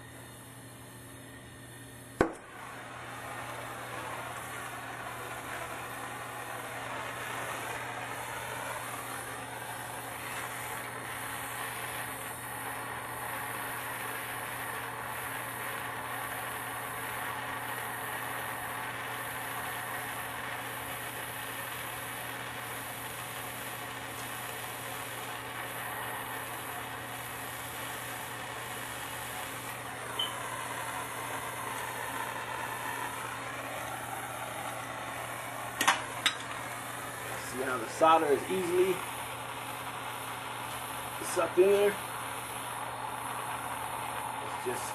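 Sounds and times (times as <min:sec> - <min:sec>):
gas torch hissing: 0:00.0 - 0:44.9.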